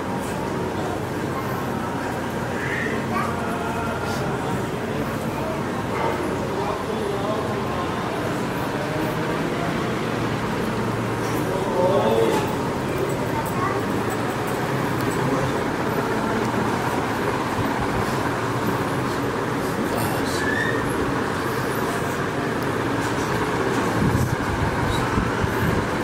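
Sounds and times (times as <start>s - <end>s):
loud rumbling noise: 0.0s - 26.0s.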